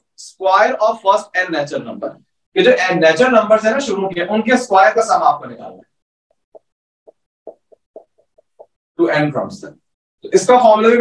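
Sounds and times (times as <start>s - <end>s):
marker squeaking on board: 6.5s - 8.7s.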